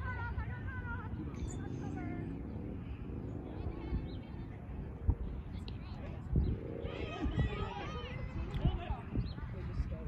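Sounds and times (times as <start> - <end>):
distant voices: 0.0 - 10.0
wind gusts on microphone: 0.0 - 10.0.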